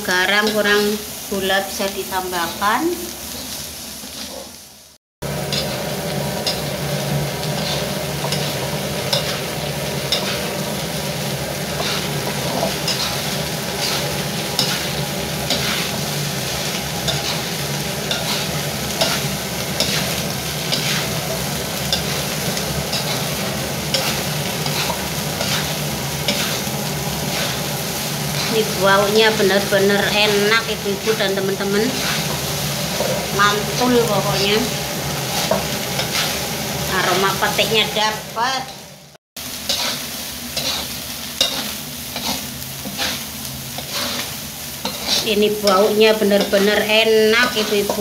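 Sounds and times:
food sizzling in a wok: 0:00.0 - 0:48.0
spatula scraping wok: 0:00.4 - 0:48.0.

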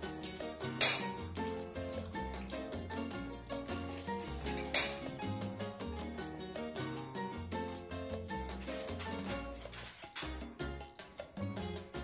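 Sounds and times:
background music with bass line: 0:00.0 - 0:12.0
cutlery clinking on ceramic dish: 0:00.8 - 0:01.2, 0:04.4 - 0:05.2.

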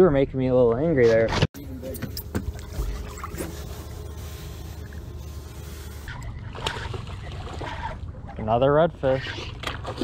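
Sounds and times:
water splashing against boat: 0:01.7 - 0:10.0.

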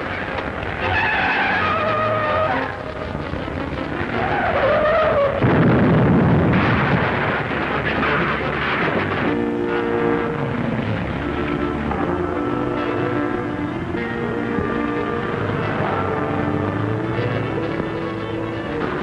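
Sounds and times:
tyres squealing: 0:00.0 - 0:05.6, 0:07.2 - 0:19.0
music: 0:00.0 - 0:19.0
loud crash with rumble: 0:04.0 - 0:12.9.

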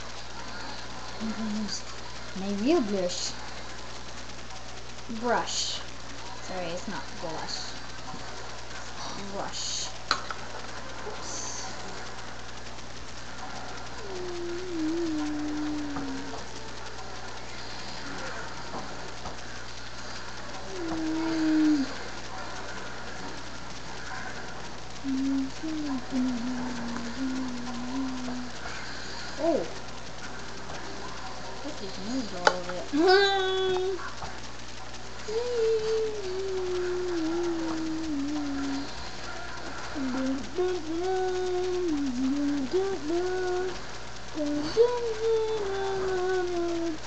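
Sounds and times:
electrical hum and hiss: 0:00.0 - 0:47.0
person humming: 0:14.0 - 0:16.8, 0:20.6 - 0:22.1, 0:25.0 - 0:28.7, 0:32.0 - 0:34.0, 0:35.2 - 0:39.1, 0:39.9 - 0:47.0.

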